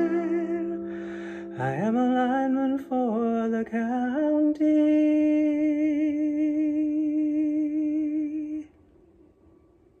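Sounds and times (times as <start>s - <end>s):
man singing note with vibrato: 0.0s - 8.7s.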